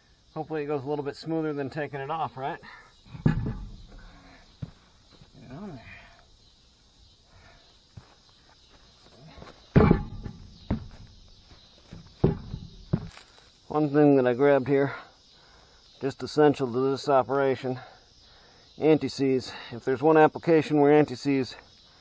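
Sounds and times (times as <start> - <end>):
tire thumping on hub: 3.1 - 4.8, 9.7 - 13.2.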